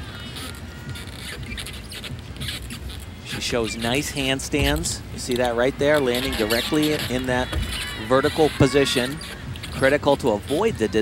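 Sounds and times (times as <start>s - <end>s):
high-pitched squeaks and patters: 0.0s - 11.0s
murmur of arena crowd: 2.5s - 11.0s.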